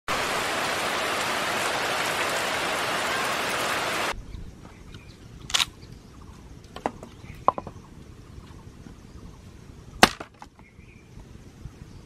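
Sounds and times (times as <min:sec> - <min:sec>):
heavy rain on vegetation: 0:00.0 - 0:04.2.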